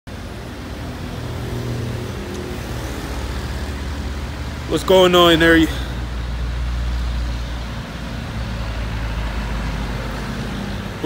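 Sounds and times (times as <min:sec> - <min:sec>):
street noise: 0:00.1 - 0:11.0.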